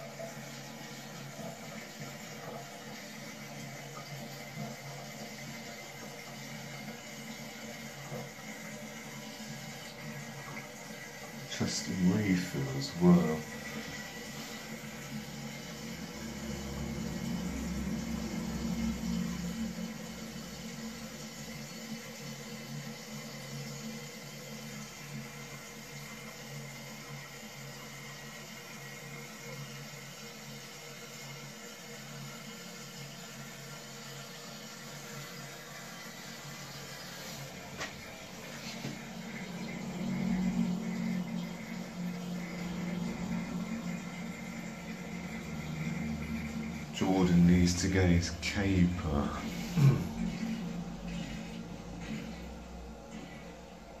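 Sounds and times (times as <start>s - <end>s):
toilet cistern refilling: 0.0s - 54.0s.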